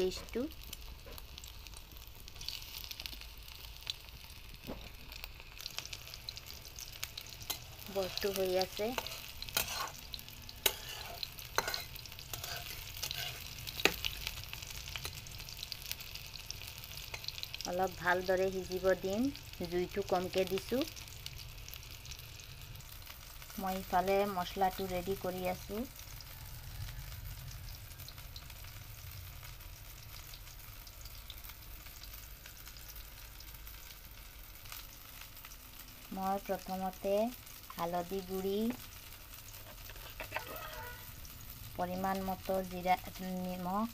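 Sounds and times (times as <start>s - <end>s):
fritters sizzling in hot oil: 0.0s - 43.9s.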